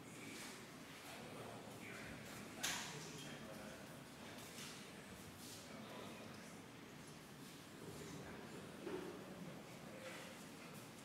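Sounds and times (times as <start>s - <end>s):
faint audience murmur: 0.0s - 11.0s.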